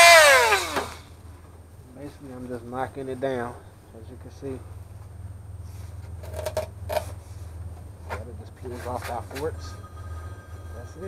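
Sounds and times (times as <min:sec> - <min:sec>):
steady low hum: 0:01.0 - 0:11.0.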